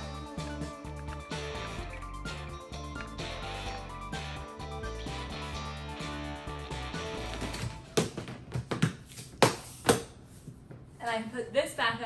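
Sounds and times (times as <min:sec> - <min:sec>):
background music: 0:00.0 - 0:08.2.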